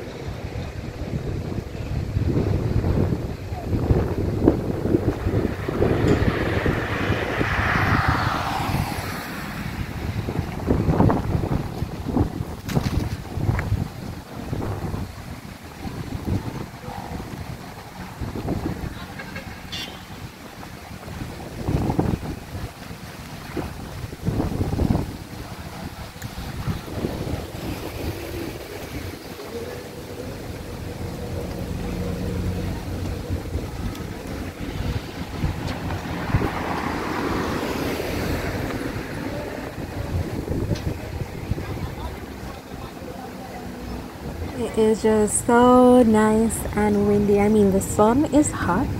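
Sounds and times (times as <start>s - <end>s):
cars passing: 0.0s - 48.9s
wind gusting on microphone: 0.0s - 48.9s.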